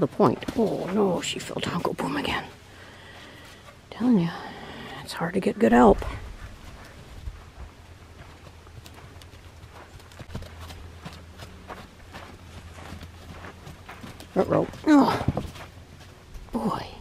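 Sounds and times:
hoofbeats on soft sand: 0.0s - 3.8s, 6.0s - 16.3s
low steady hum: 0.0s - 17.0s.

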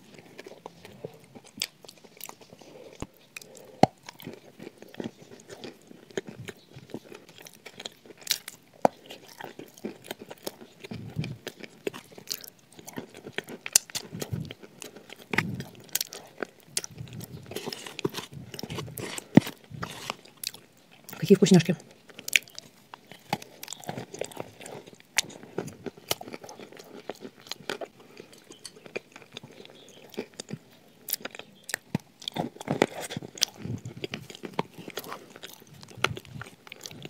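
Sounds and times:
chewing and crunching biscuits: 0.0s - 37.0s.

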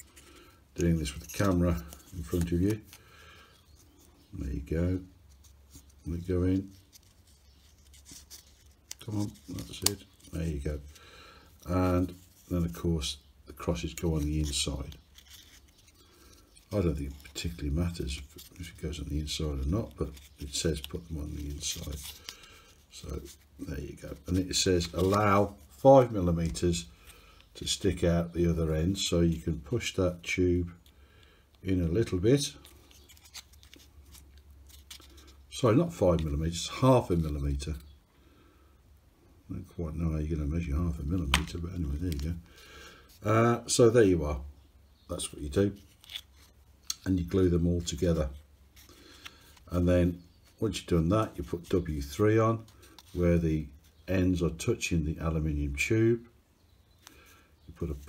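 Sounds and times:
wooden discs rubbing and ticking: 0.0s - 3.0s, 11.6s - 30.3s.

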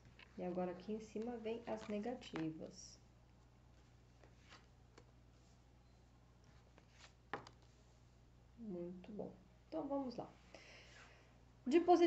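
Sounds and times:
cards sliding and rustling: 3.8s - 5.1s, 6.5s - 7.8s.

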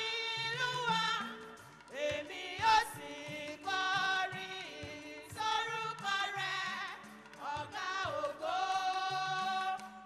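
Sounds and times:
church choir singing long notes: 2.1s - 10.0s.

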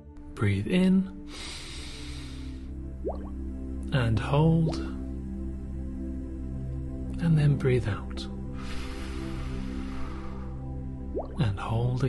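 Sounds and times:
soft background music: 0.0s - 12.0s
breathing in through nose: 1.3s - 2.7s, 8.6s - 10.8s.

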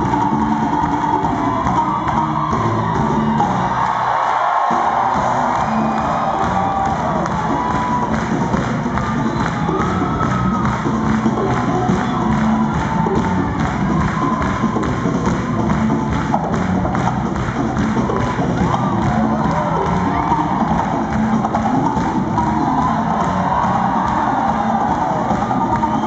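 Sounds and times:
crowd cheering and whooping: 0.0s - 26.0s.

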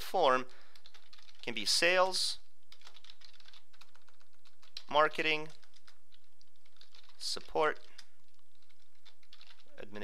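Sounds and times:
computer keyboard typing: 0.7s - 1.6s, 2.7s - 9.7s.

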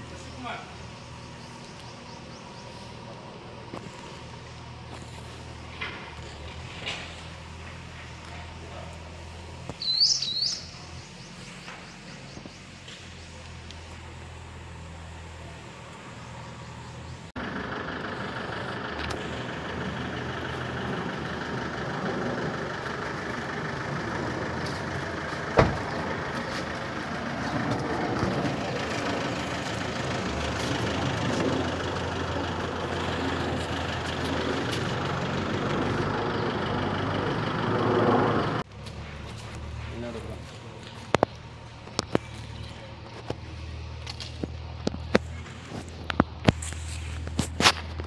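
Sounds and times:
street noise: 0.0s - 48.0s
vehicle engine running: 0.0s - 48.0s
footsteps and scuffs: 24.6s - 28.3s, 38.6s - 48.0s
car door slamming: 25.6s - 26.0s.

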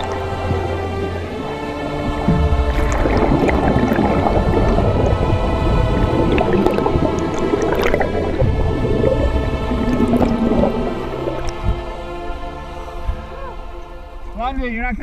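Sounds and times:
underwater bubbling: 0.0s - 14.0s
background music: 0.0s - 15.0s.

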